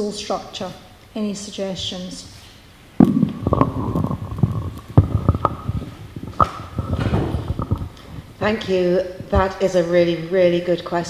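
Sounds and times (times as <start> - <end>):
microphone handling thumps and knocks: 3.0 - 9.6.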